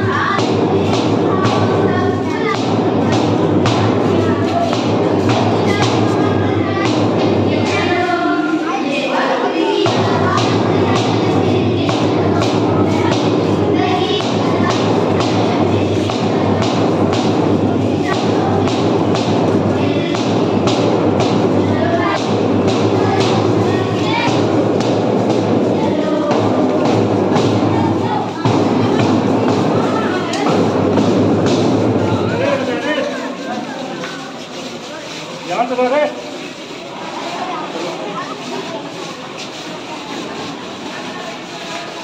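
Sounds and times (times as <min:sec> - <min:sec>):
music: 0:00.0 - 0:35.2
group marching footsteps on hard floor: 0:00.0 - 0:42.0
voices: 0:00.0 - 0:42.0.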